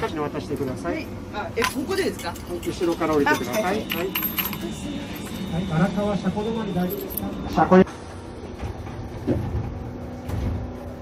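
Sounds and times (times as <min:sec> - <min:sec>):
tram interior hum: 0:00.0 - 0:11.0.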